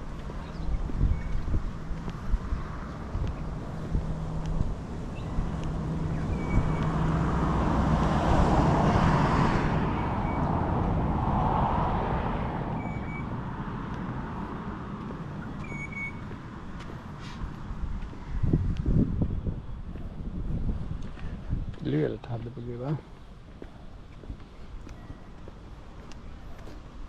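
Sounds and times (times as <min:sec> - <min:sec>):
vehicle passing: 0:00.0 - 0:21.3.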